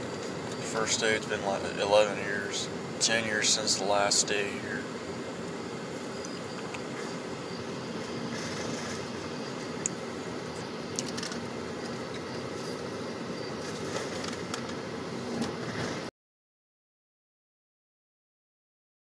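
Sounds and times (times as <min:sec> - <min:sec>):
car road and engine noise: 0:00.0 - 0:16.1.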